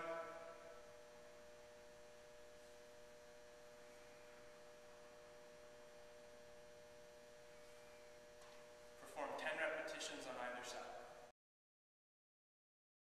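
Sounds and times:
faint two-tone hum: 0:00.0 - 0:11.3.

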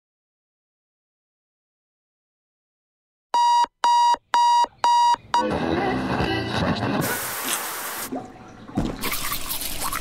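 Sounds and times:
alarm clock beeping: 0:03.4 - 0:05.5
music: 0:05.3 - 0:07.0.

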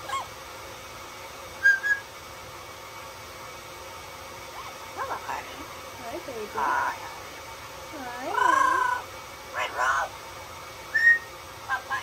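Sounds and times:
parrot calling: 0:00.0 - 0:00.4, 0:08.2 - 0:10.2, 0:10.9 - 0:12.0
parrot whistled notes: 0:01.6 - 0:02.1, 0:10.9 - 0:11.3.

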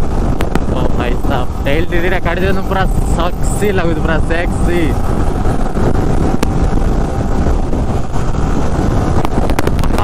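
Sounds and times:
motorcycle engine drone: 0:00.0 - 0:10.0
wind rushing over microphone: 0:00.0 - 0:10.0.

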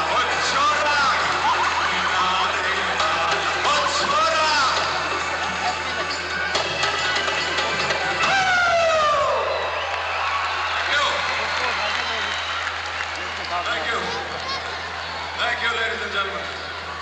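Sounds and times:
live band music: 0:00.0 - 0:09.2.

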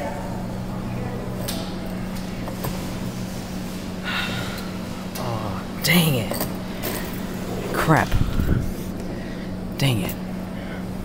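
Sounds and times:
claw machine electric hum: 0:00.2 - 0:11.0.

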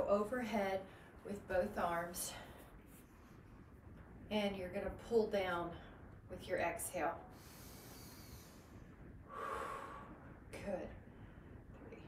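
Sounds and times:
woman breathing hard: 0:07.3 - 0:10.4.

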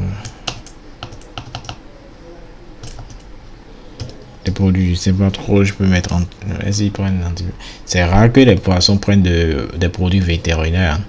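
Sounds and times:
computer keyboard typing: 0:00.1 - 0:01.8, 0:02.8 - 0:03.3, 0:04.0 - 0:04.2.

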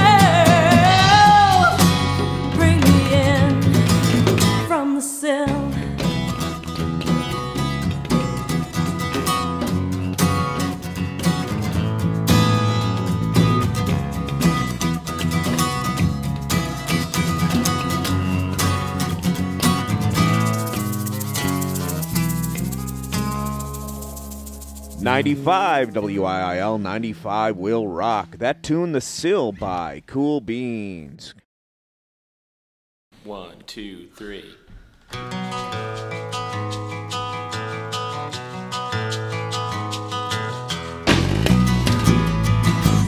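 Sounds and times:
rock band playing: 0:00.0 - 0:04.7, 0:05.8 - 0:26.0, 0:35.2 - 0:43.0
shaker beat: 0:17.0 - 0:26.1, 0:35.4 - 0:43.0.

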